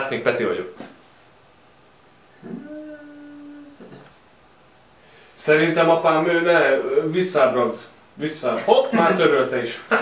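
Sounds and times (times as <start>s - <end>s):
person humming: 2.3s - 4.2s
brief low vocal sound: 2.4s - 4.1s.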